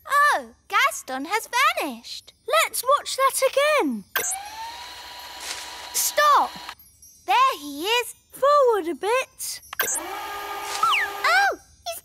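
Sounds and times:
cartoon buzzing hum: 4.2 - 6.8, 9.8 - 11.4.

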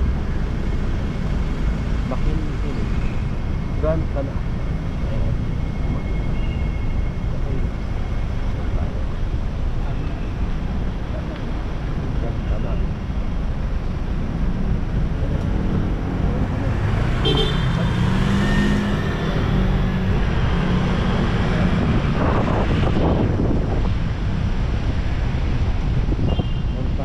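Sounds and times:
cars and motorcycles passing: 0.0 - 27.0
wind rumble on microphone: 17.8 - 27.0.

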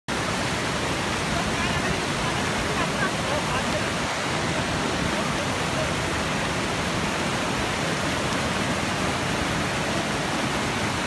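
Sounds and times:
river rushing over rocks: 0.1 - 11.0
faint voices: 1.3 - 6.5.

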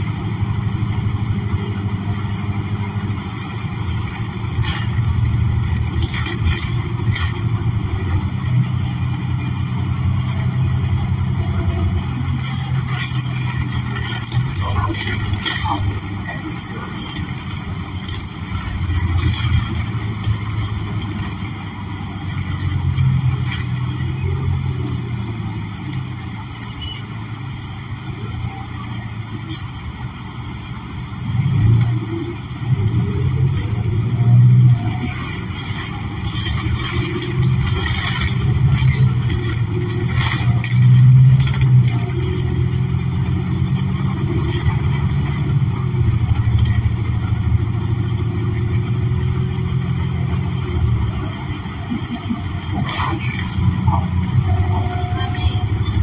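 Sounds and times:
bus engine droning: 0.0 - 56.0
road noise: 0.0 - 56.0.

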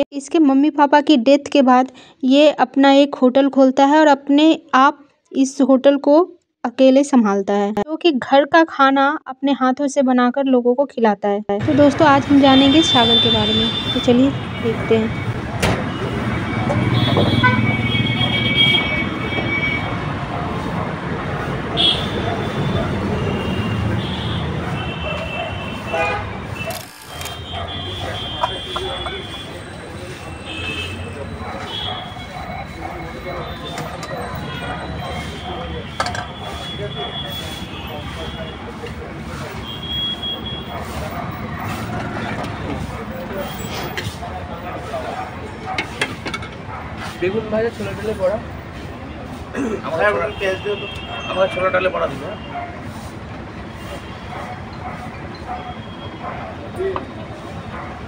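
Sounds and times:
people talking: 0.0 - 17.1, 27.9 - 39.6, 47.2 - 48.4, 49.6 - 52.4
indistinct voices: 11.6 - 39.9
street traffic rumble: 11.6 - 58.0.

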